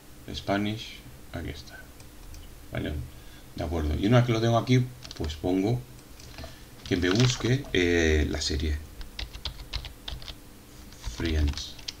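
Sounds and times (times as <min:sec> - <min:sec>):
keyboard typing: 0:05.0 - 0:05.4, 0:06.4 - 0:07.8, 0:09.0 - 0:10.4, 0:11.0 - 0:12.0.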